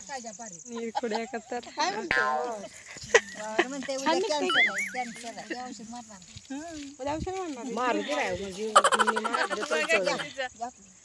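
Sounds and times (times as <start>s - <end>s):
women chattering and laughing: 0.0s - 11.0s.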